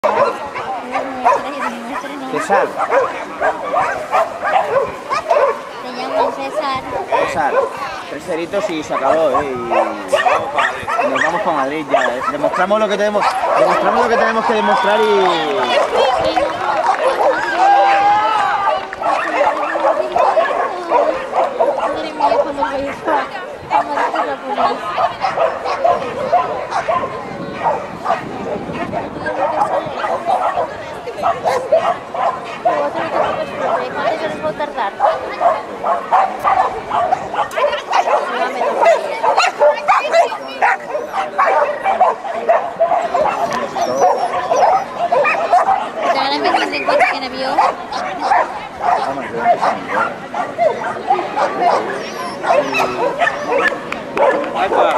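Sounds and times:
dog barking: 0.0s - 8.0s, 8.6s - 14.9s, 15.6s - 18.0s, 18.6s - 34.2s, 34.8s - 54.9s
people's voices: 0.0s - 54.9s.

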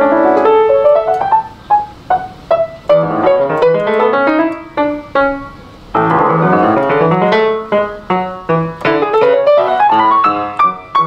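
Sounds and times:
grand piano playing: 0.0s - 11.0s.

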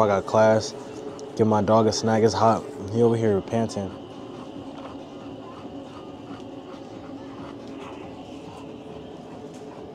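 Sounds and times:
dog panting: 0.0s - 9.9s.

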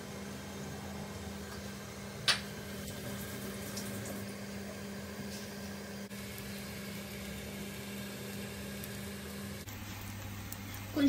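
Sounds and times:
eggs sizzling in pan: 1.2s - 11.0s.

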